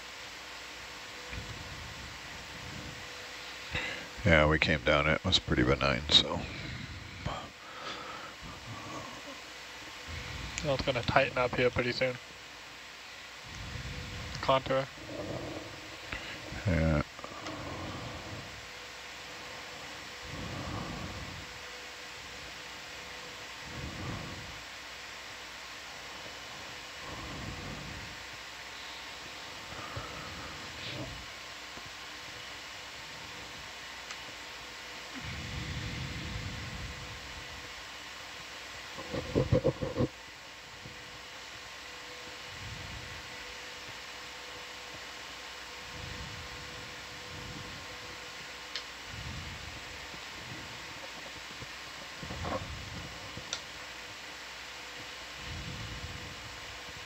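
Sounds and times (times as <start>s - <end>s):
faint steady tone: 0.0s - 57.0s
steady hiss and electrical hum: 0.0s - 57.0s.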